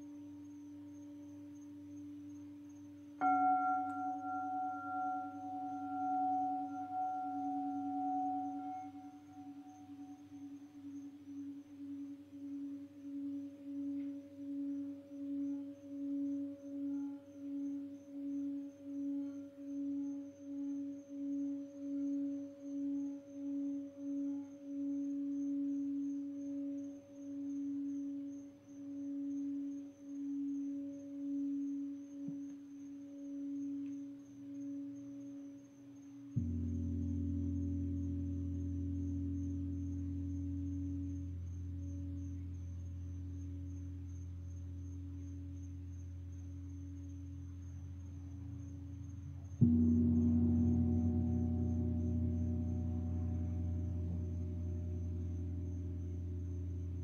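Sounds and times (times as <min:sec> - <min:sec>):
singing bowl pulsing tone: 0:00.0 - 0:57.0.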